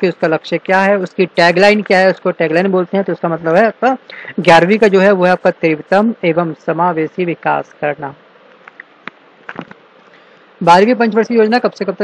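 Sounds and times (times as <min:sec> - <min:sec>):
faint recording hiss: 0:00.0 - 0:12.0.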